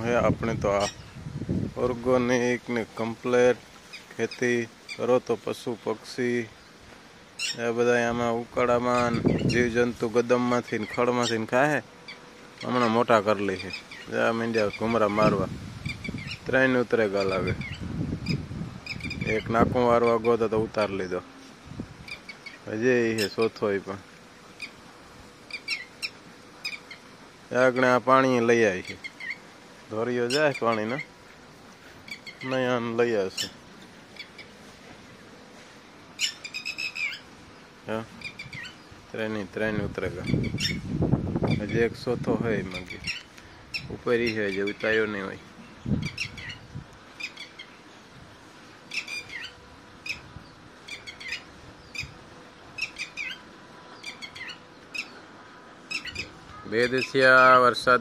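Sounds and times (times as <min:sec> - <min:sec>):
lapwings calling: 0:00.7 - 0:01.2, 0:03.8 - 0:05.2, 0:06.6 - 0:07.8, 0:08.8 - 0:09.7, 0:10.3 - 0:20.5, 0:22.0 - 0:23.7, 0:24.5 - 0:29.5, 0:30.2 - 0:34.6, 0:36.2 - 0:39.0, 0:40.2 - 0:40.9, 0:42.7 - 0:48.0, 0:48.8 - 0:52.2, 0:52.8 - 0:57.6
lapwings chirping: 0:07.4 - 0:07.6, 0:10.7 - 0:16.4, 0:25.5 - 0:27.1, 0:32.0 - 0:34.6, 0:36.2 - 0:37.3, 0:42.8 - 0:45.1, 0:48.9 - 0:52.2, 0:52.8 - 0:55.2, 0:55.9 - 0:57.2.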